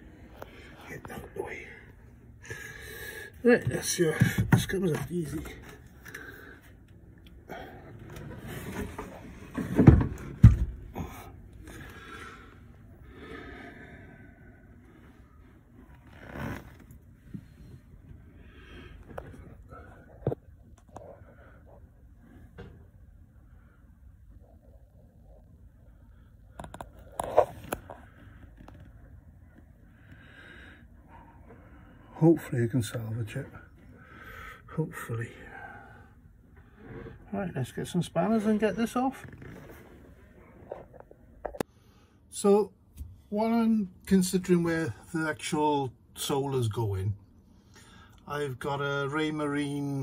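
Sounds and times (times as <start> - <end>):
man breathing and muttering: 0.0 - 8.4, 10.6 - 15.1.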